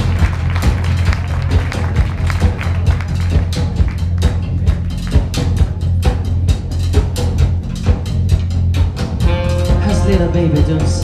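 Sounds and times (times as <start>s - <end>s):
big band playing rock: 0.0s - 11.0s
drum kit beating: 0.0s - 11.0s.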